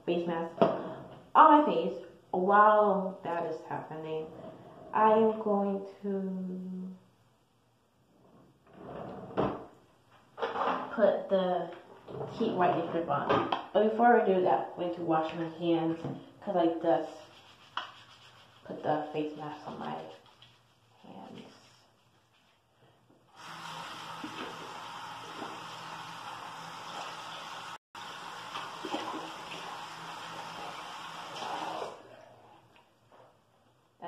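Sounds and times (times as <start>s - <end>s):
water running into sink: 23.3s - 32.1s.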